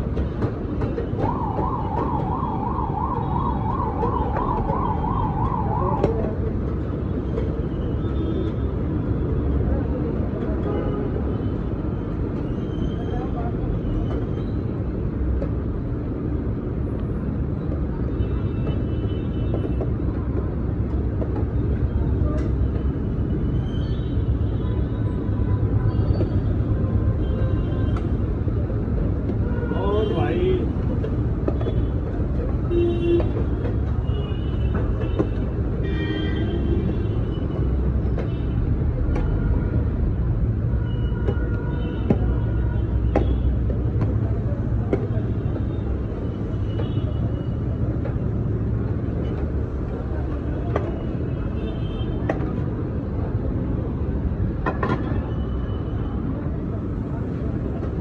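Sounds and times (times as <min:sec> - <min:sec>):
low street rumble: 0:00.0 - 0:58.0.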